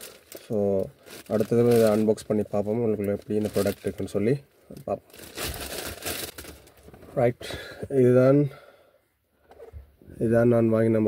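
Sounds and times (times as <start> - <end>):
plastic mailer bag crinkling: 0.0 - 6.9.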